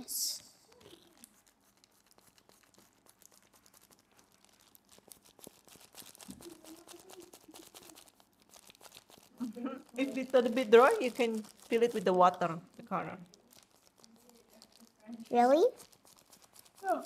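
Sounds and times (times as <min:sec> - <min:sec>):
plastic gloves crinkling: 0:00.0 - 0:17.0.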